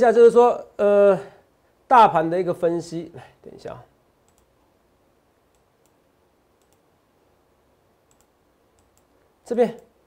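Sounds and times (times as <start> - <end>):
faint clicks: 4.2 - 4.5, 6.6 - 6.9, 8.1 - 9.1.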